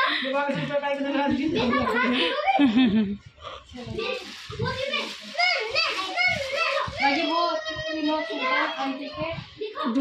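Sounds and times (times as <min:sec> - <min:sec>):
child talking: 0:03.8 - 0:10.0.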